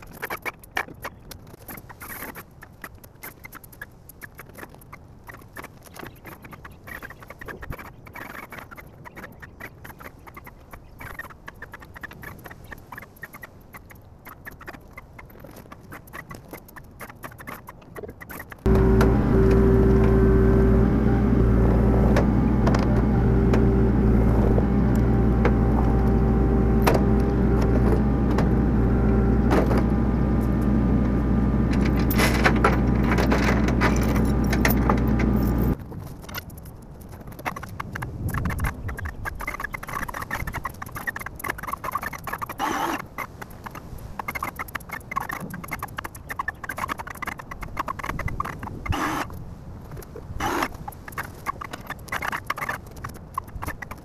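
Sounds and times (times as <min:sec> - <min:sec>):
diesel engine running with whine: 0:18.6 - 0:35.8
lifting chain clinking and rattling: 0:31.7 - 0:35.8.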